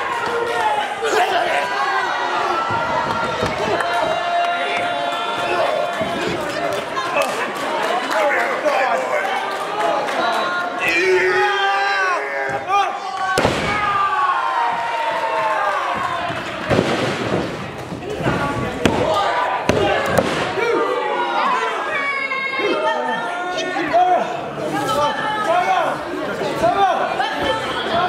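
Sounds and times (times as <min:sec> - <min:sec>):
spectators shouting and talking: 0:00.0 - 0:28.0
wrestlers slamming the ring: 0:13.3 - 0:14.2, 0:16.0 - 0:20.8.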